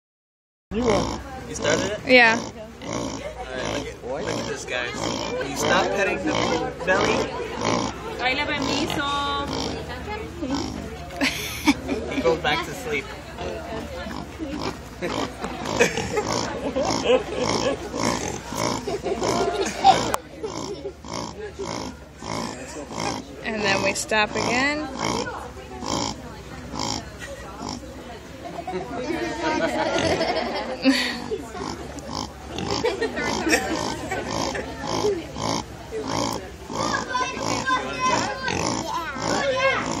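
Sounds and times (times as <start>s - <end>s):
pig grunting: 0.8s - 10.9s, 13.3s - 27.8s, 29.9s - 30.4s, 31.2s - 40.0s
people talking: 0.8s - 40.0s
people laughing: 3.2s - 8.8s, 9.7s - 13.0s, 13.6s - 21.8s, 22.4s - 23.8s, 27.0s - 36.5s.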